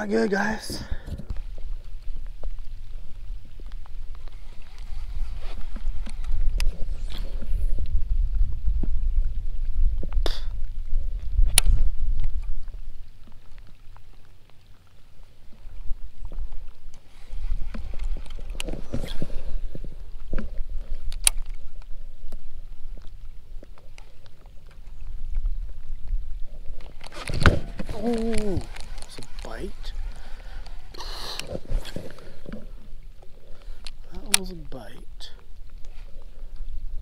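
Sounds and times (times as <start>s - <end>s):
wind buffeting microphone: 0.0s - 13.2s.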